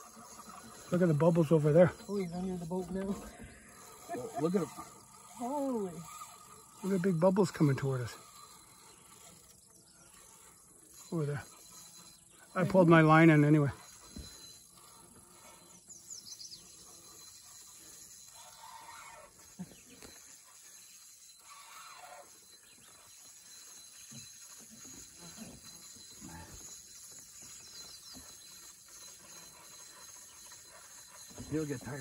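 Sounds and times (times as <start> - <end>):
insects chirring: 0.0 - 32.0.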